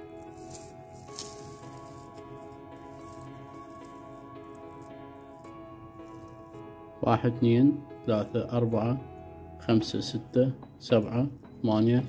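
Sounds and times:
soft background music: 0.0 - 12.0
crackle of insulation rubbed off wires: 0.2 - 4.9.

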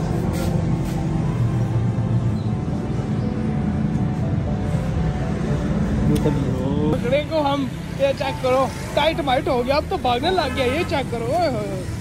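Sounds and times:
background music: 0.0 - 10.0
traffic: 0.0 - 12.0.

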